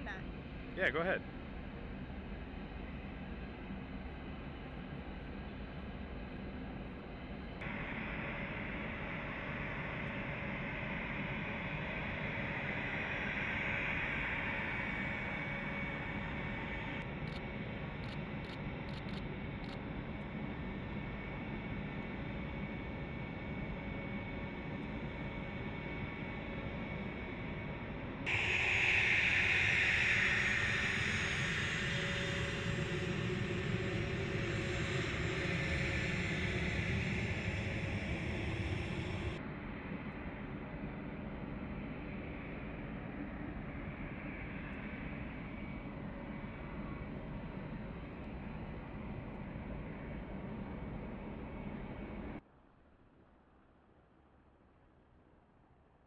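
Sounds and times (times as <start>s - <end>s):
jet engines whining: 21.2s - 39.4s.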